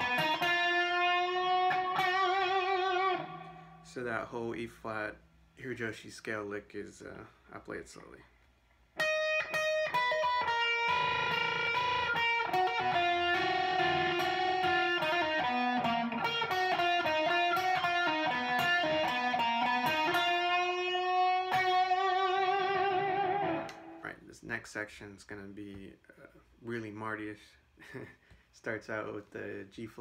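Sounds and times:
electric guitar melodic lick: 0.0 - 3.8, 9.0 - 24.0.

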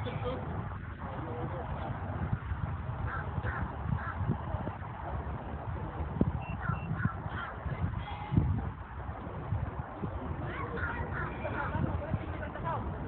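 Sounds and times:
wind rumble: 0.0 - 13.0
brief high beeps: 6.4 - 7.0
bird calling: 6.4 - 7.6.

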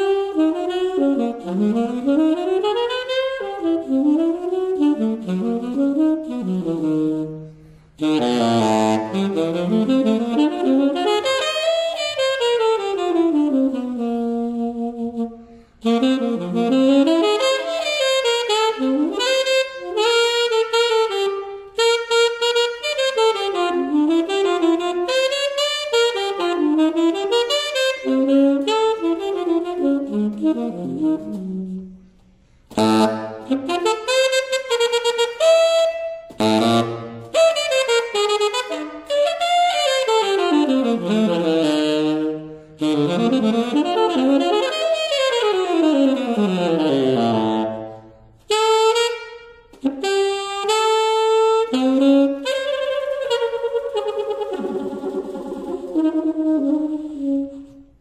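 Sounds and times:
tenor saxophone improvising: 0.0 - 58.0.

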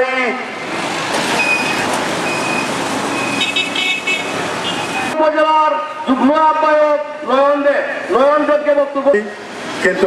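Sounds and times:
street traffic noise: 0.0 - 10.0
vehicle horns: 3.2 - 6.1.

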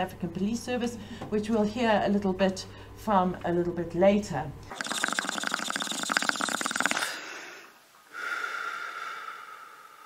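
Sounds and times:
steady ringing tone: 4.7 - 7.0
rasping buzz: 4.7 - 7.2.

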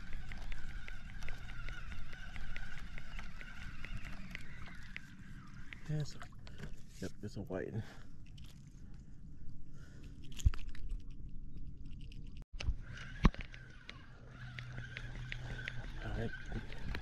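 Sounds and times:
regular ticking: 0.0 - 6.5, 13.0 - 17.0.

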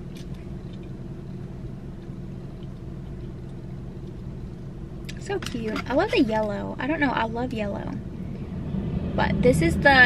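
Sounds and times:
car idling: 0.0 - 10.0.

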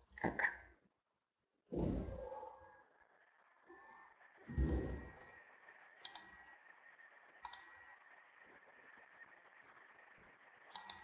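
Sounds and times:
computer mouse double-clicking: 6.0 - 6.3, 7.4 - 7.6, 10.7 - 11.0.

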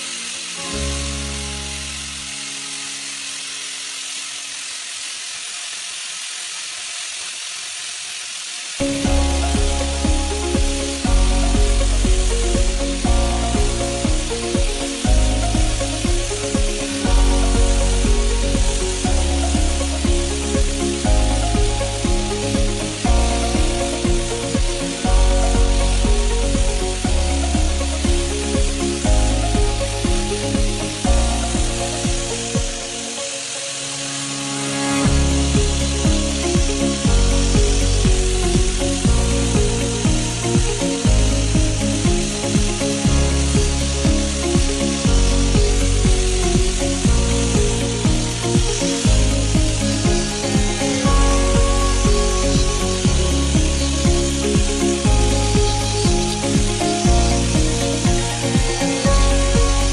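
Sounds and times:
angle grinder on metal: 0.0 - 59.9
music with pulsing bass: 8.8 - 59.9.

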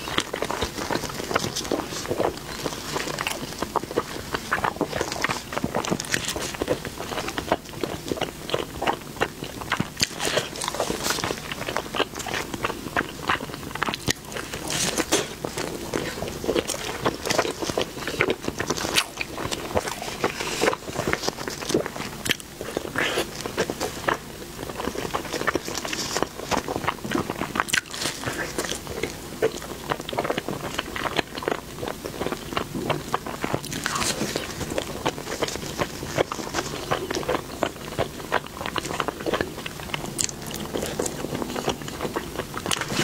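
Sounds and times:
person chewing soft food: 0.0 - 43.0.

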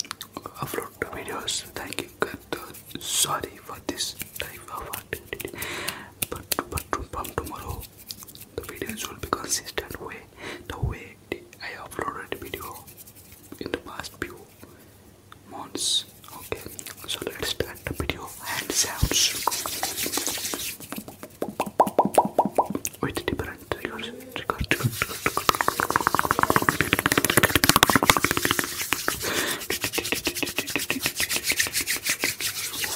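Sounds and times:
hands rubbing tapping and clicking: 0.0 - 10.2, 11.9 - 14.6, 15.8 - 32.9
whispered mouth sounds: 0.0 - 12.9, 15.4 - 31.6.

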